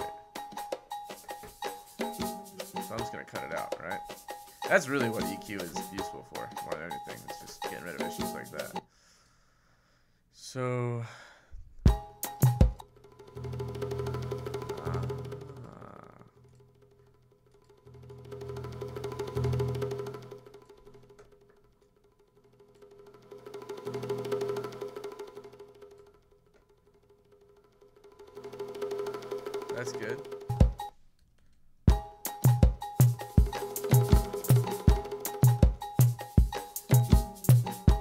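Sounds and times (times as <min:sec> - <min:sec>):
bongo roll loop: 0:00.0 - 0:08.8, 0:11.9 - 0:16.4, 0:27.6 - 0:31.0, 0:31.9 - 0:38.0.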